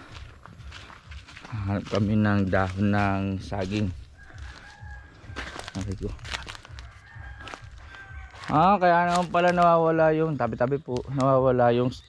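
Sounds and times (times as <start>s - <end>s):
footsteps in dry undergrowth: 0.0s - 12.0s
distant rooster crowing: 3.6s - 9.8s.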